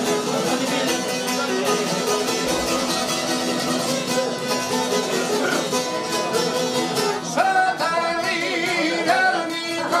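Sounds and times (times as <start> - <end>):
plucking on long-necked lutes: 0.0 - 10.0.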